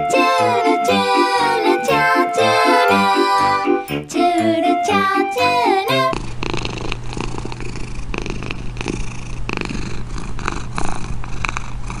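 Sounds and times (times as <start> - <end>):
cat purring: 5.9 - 12.0.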